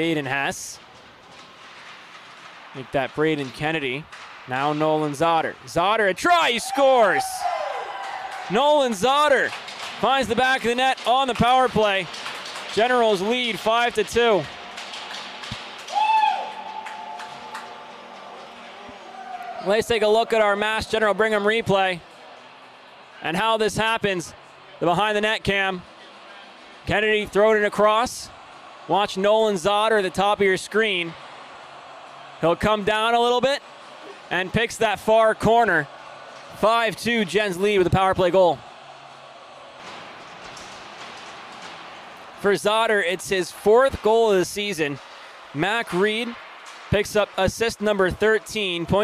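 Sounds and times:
arena noise: 0:00.0 - 0:49.0
spectator whooping: 0:06.6 - 0:08.5, 0:15.9 - 0:17.6
sticks and skates clicking on ice: 0:08.1 - 0:18.6.

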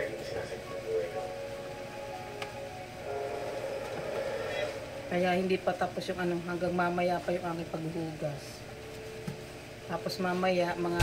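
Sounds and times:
television voice and music: 0:00.0 - 0:11.0.

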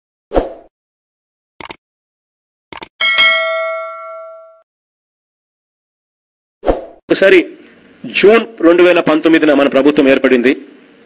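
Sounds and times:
mouse double-clicks: 0:01.6 - 0:01.8
notification bell ding: 0:03.0 - 0:04.6.

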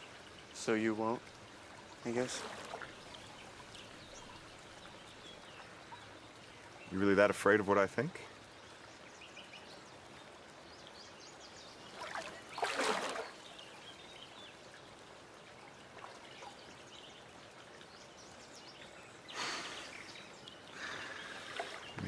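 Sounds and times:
water trickling and lapping: 0:00.0 - 0:22.0
water splash: 0:02.1 - 0:03.8, 0:11.8 - 0:13.6.

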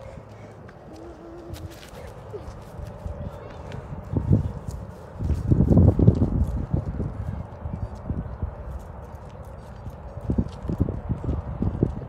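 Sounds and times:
footsteps on asphalt: 0:00.0 - 0:12.0
wind rumble on microphone: 0:00.0 - 0:12.0.

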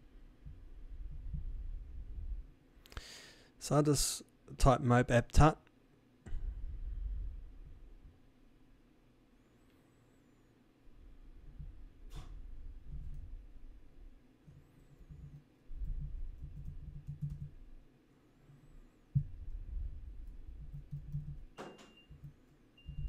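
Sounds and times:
typing on computer keyboard: 0:15.2 - 0:17.6, 0:20.2 - 0:23.0.

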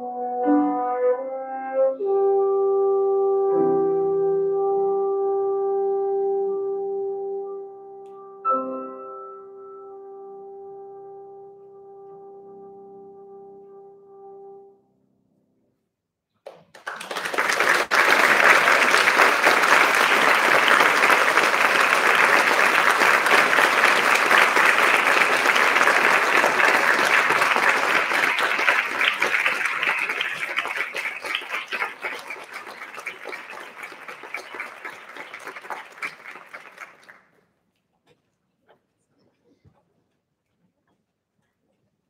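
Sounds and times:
audience applauding: 0:16.5 - 0:37.4.

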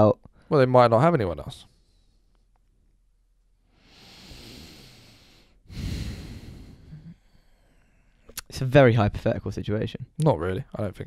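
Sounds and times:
person breathing heavily: 0:03.7 - 0:08.3.

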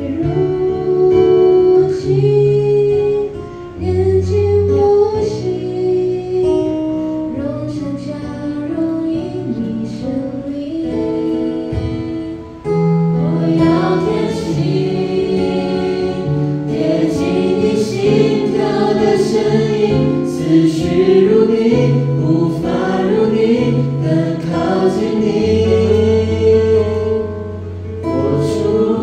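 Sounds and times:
woman singing into microphone: 0:00.0 - 0:27.5
group singing worship song: 0:00.0 - 0:29.0
soft instrumental accompaniment: 0:00.0 - 0:29.0.

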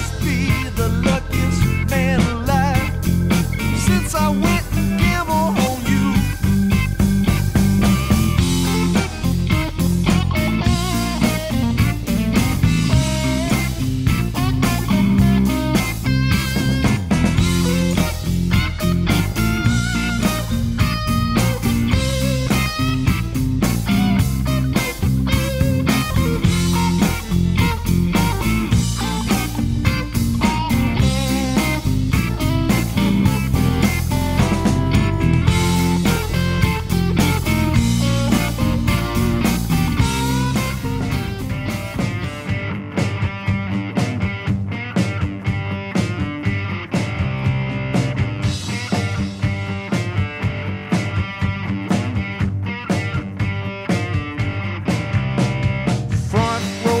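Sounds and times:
blues-rock electric guitar: 0:00.0 - 0:57.0
drums: 0:00.0 - 0:57.0.

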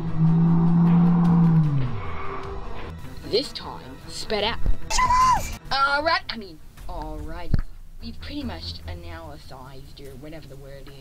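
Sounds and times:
faint music: 0:02.9 - 0:11.0.

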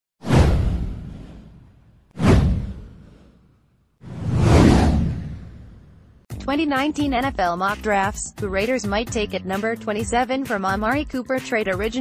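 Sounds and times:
whoosh with deep rumble: 0:00.2 - 0:06.3.

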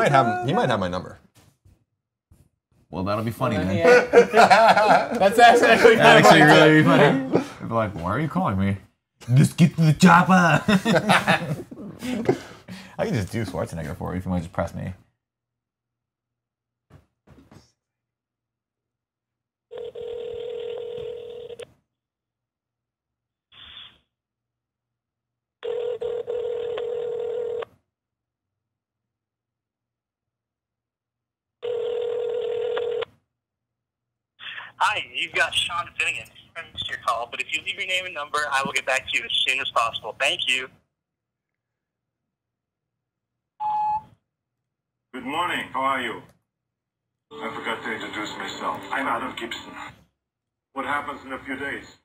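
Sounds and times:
telephone ringback tone: 0:19.7 - 0:21.6, 0:31.6 - 0:33.0
voicemail beep over phone line: 0:43.6 - 0:44.1.

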